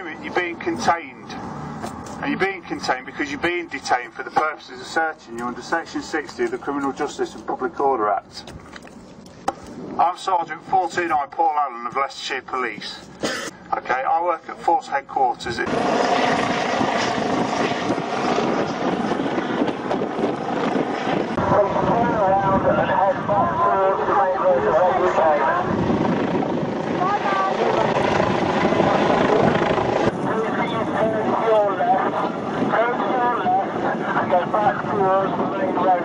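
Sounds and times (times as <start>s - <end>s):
helicopter rotor and engine: 0.0s - 36.0s
voices: 21.4s - 25.8s, 26.9s - 36.0s.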